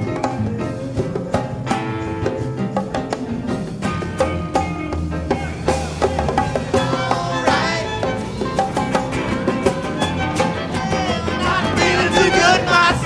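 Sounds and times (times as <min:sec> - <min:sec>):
live rock band playing: 0:00.0 - 0:13.0
violin line: 0:05.9 - 0:13.0.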